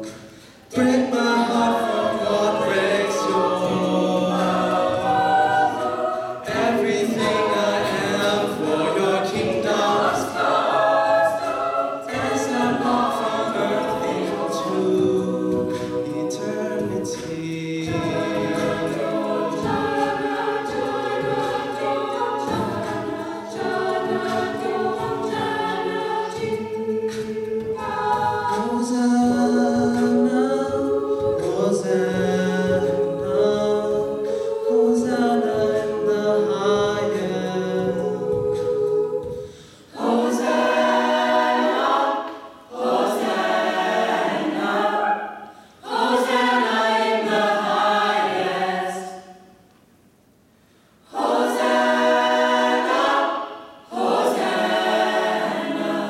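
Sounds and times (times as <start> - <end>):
choir singing a cappella: 0.0 - 49.7, 50.9 - 56.0
man singing into microphone: 14.7 - 18.8, 28.5 - 34.1.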